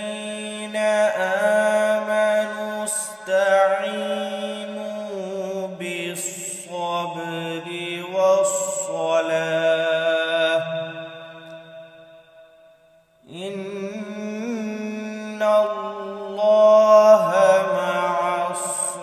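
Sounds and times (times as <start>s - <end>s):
man reciting melodically: 0.0s - 11.3s, 13.3s - 19.0s.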